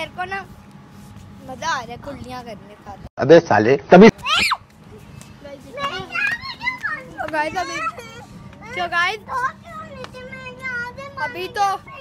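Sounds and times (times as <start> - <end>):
children calling out and chattering: 4.2 - 12.0.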